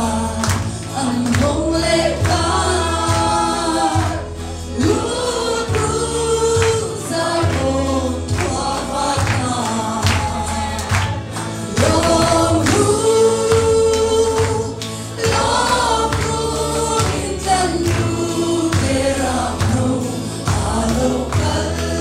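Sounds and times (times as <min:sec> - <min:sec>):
bass line: 0:00.0 - 0:22.0
woman singing gospel: 0:00.0 - 0:22.0.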